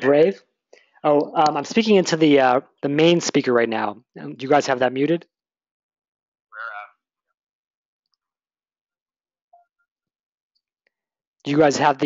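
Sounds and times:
short thin voice sound: 6.6s - 6.8s.

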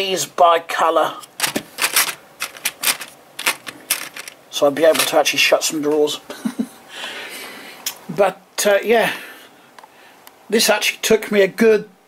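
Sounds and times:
plastic bricks clicking and clattering: 1.2s - 5.2s.

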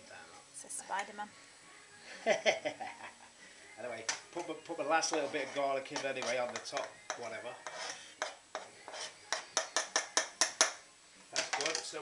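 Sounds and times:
spoon tapping on chopping board: 5.9s - 7.3s, 9.3s - 10.8s.

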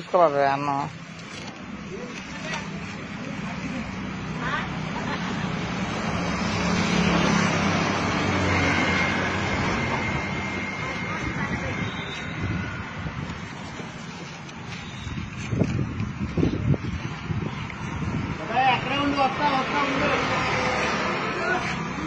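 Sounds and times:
vehicle passing on road: 2.5s - 22.0s.

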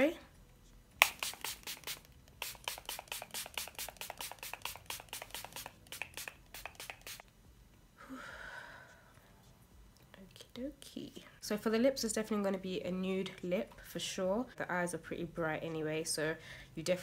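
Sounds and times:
spray bottle hissing: 1.0s - 7.2s.

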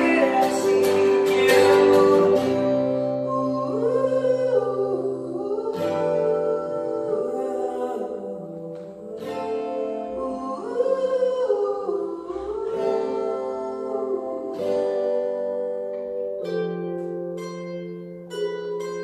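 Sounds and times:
man singing a slow ballad: 0.0s - 8.4s
acoustic guitar strumming: 0.0s - 19.0s
digital piano: 0.0s - 19.0s.

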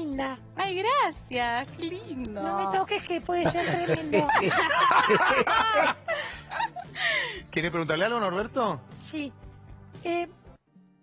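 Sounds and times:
person laughing: 3.3s - 7.2s.

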